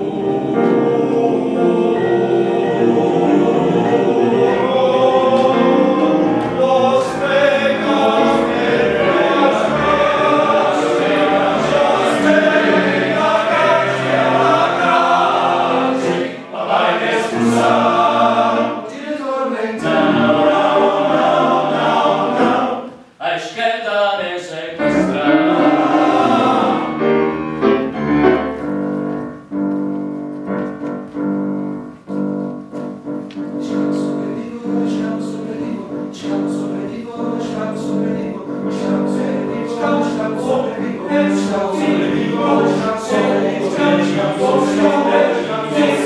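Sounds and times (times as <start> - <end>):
men's choir singing: 0.0 - 23.1, 24.0 - 28.0, 33.6 - 46.0.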